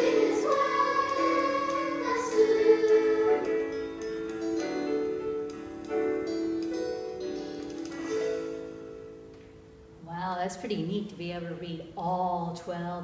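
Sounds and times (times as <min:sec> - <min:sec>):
instrumental music from a stereo: 0:00.0 - 0:09.3.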